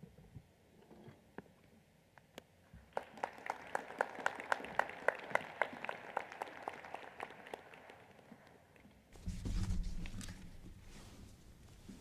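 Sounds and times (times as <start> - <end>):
sparse audience applause: 2.9 - 8.8.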